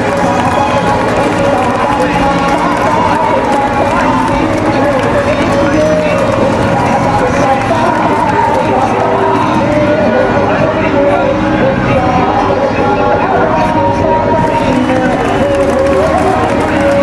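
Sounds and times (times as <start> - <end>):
babble of many voices: 0.0 - 17.0.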